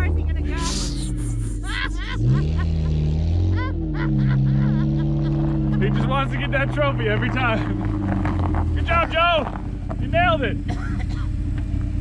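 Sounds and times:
car engine revving: 0.0s - 12.0s
bystanders laughing: 0.5s - 7.8s.

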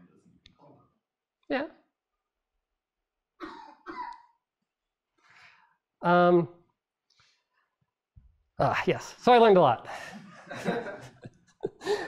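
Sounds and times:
person coughing: 3.4s - 4.4s.

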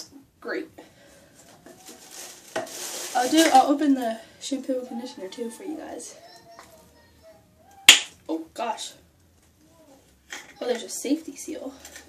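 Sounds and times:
packaging rustling and knocking: 1.5s - 3.8s.

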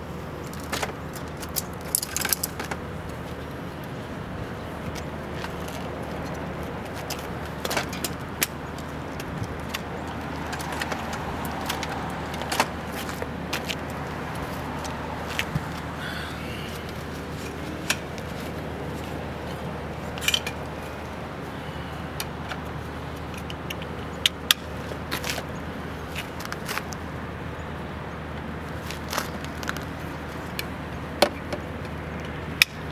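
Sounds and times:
low outdoor hum: 0.0s - 32.9s.

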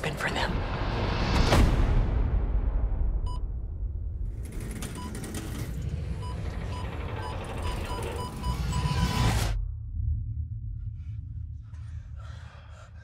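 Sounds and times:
film score music: 0.0s - 13.0s
low rumble: 5.8s - 13.0s
parking sensor beeping: 6.2s - 9.2s.

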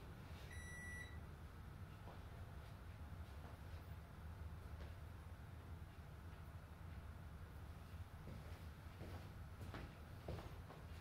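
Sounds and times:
faint low room hum: 0.0s - 11.0s
short electronic beep: 0.5s - 1.2s.

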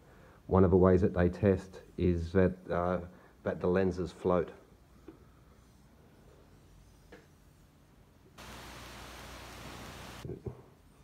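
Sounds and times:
stone plate gliding with hiss: 8.4s - 10.2s.

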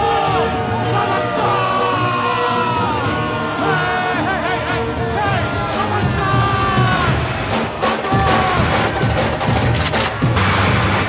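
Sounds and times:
action film music: 0.0s - 11.0s.

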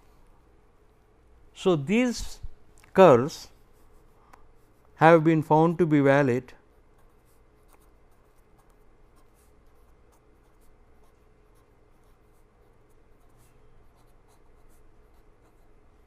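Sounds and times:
pen scratching on paper: 6.8s - 16.0s.

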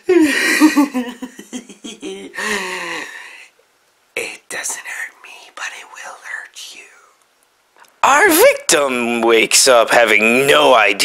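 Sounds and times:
man whispering: 4.2s - 7.2s.

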